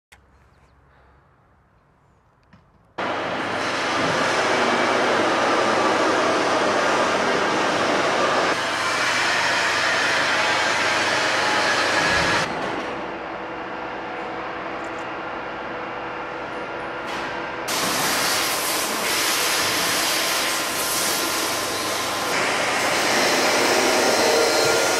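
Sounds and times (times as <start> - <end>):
factory machinery noise: 3.0 - 24.9.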